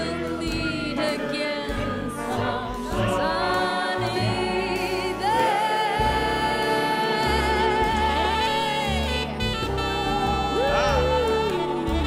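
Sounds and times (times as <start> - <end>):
big band chords: 0.0 - 12.0.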